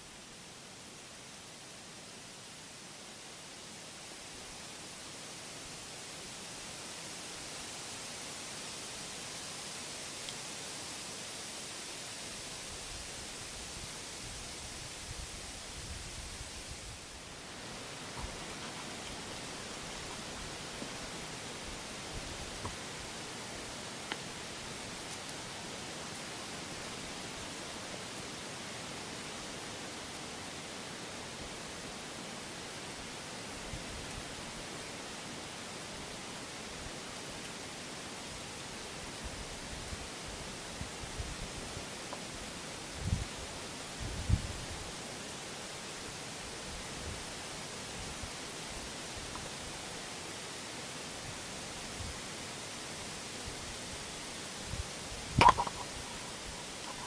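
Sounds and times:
steady hiss of woods: 0.0 - 57.0.

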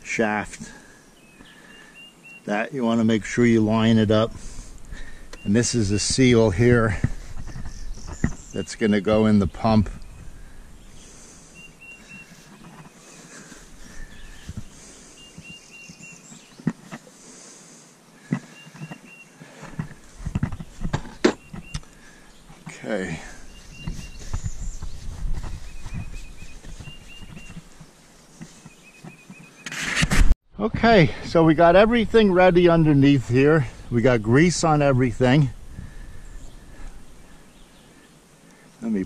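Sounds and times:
faint bird chirps: 0.9 - 2.7, 7.3 - 16.7, 18.4 - 19.6, 20.5 - 29.8.

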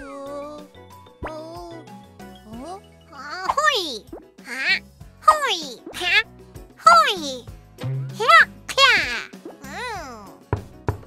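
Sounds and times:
light children's music: 0.0 - 11.0
cartoon character exclamations: 4.5 - 6.2, 6.8 - 7.4, 8.2 - 10.3.

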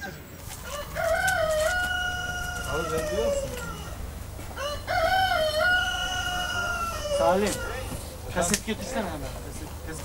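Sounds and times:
rooster crowing: 0.6 - 8.0.

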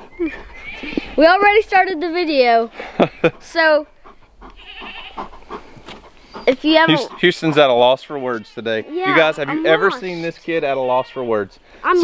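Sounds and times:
goat bleating: 0.4 - 1.2, 4.4 - 5.5, 6.8 - 12.0.

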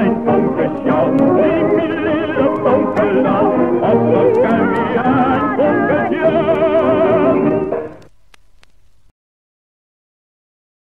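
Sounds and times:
old gramophone song recording: 0.0 - 9.1.

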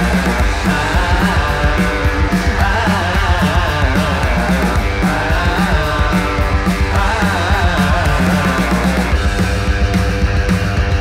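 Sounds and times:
drum kit: 0.0 - 11.0
electric guitar through amplifier: 0.0 - 11.0.

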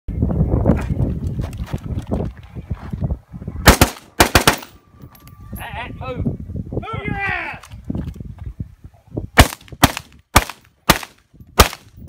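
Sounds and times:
gunshots: 3.6 - 4.8, 9.4 - 12.0.

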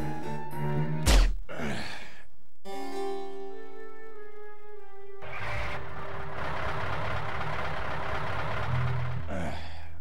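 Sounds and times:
car engine running: 5.2 - 9.4.

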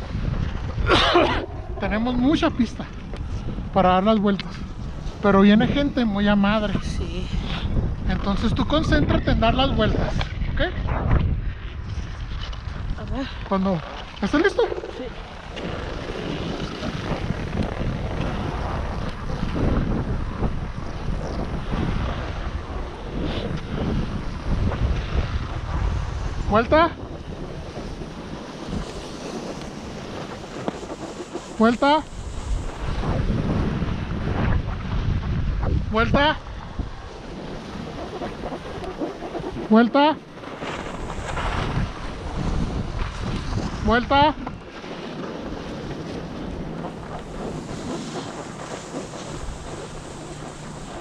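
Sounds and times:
wind buffeting microphone: 0.0 - 51.0
skis sliding over snow: 11.9 - 35.4, 37.1 - 51.0.

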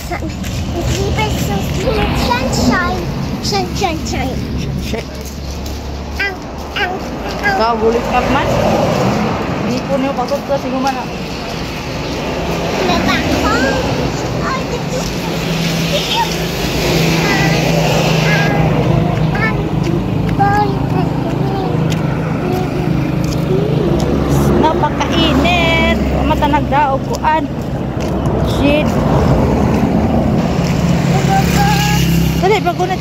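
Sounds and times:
child chattering: 0.0 - 8.0, 12.2 - 27.6, 28.4 - 33.0
motor vehicle engine hum: 0.0 - 33.0.

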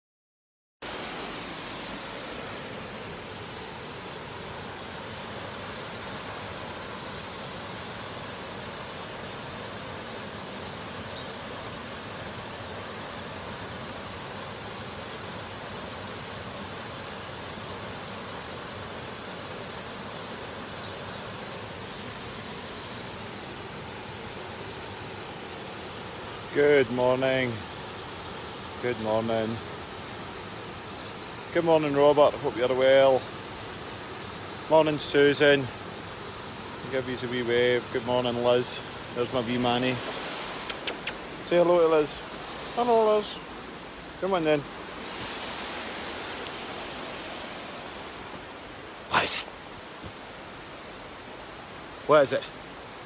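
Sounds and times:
waterfall rushing: 0.8 - 53.0.

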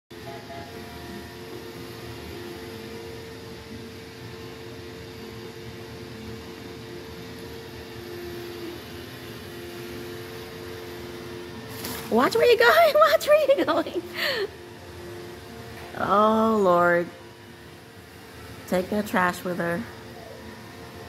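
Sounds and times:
small motor humming: 0.2 - 21.0.

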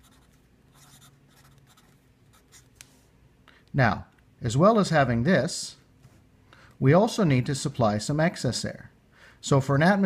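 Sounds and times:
marker writing on paper: 0.0 - 2.7.

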